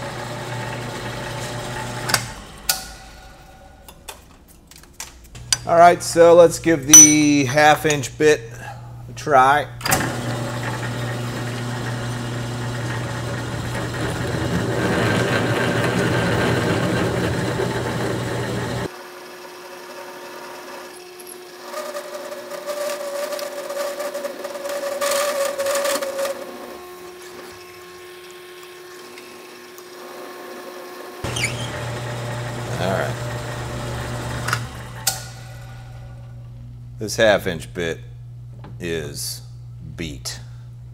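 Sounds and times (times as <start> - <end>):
steady mid-pitched tone: 6.9 - 7.7
drill press drilling steel: 9.8 - 36.3.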